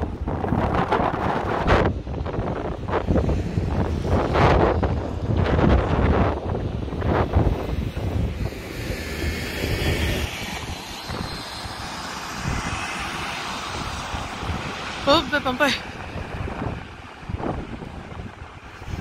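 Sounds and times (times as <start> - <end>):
wind buffeting microphone: 0.0 - 19.0
jet engines whining: 6.5 - 19.0.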